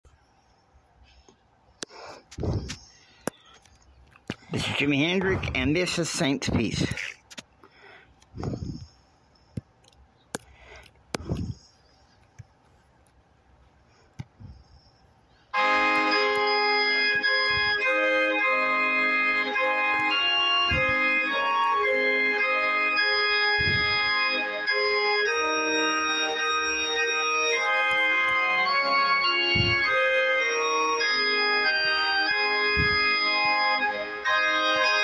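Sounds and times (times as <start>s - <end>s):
organ playing held chords: 4.4s - 7.0s, 15.5s - 35.0s.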